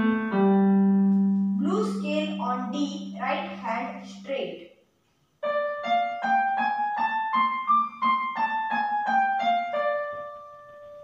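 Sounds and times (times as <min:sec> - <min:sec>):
keyboard piano playing a scale: 0:00.0 - 0:04.0, 0:05.4 - 0:11.0.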